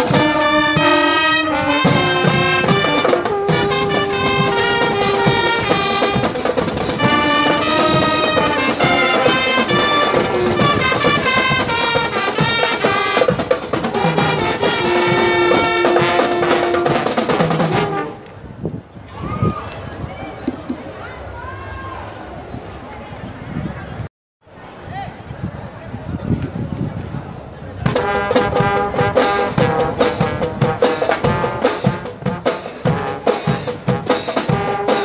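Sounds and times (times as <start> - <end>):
brass fanfare band playing: 0.0 - 18.3, 27.9 - 35.0
faint voices: 19.0 - 31.0.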